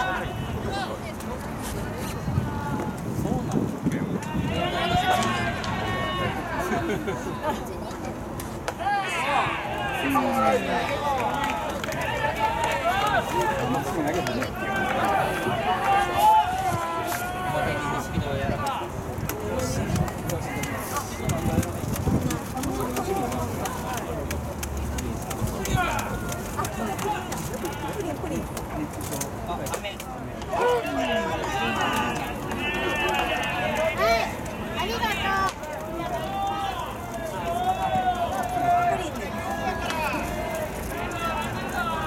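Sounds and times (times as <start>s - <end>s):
voices calling and shouting: 0.0s - 42.0s
long drawn-out yells: 4.2s - 6.8s, 8.8s - 13.9s, 14.5s - 18.1s, 30.5s - 42.0s.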